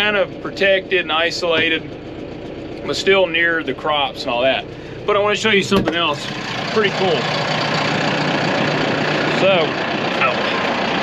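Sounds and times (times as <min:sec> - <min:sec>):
tractor diesel engine idling: 0:00.0 - 0:11.0.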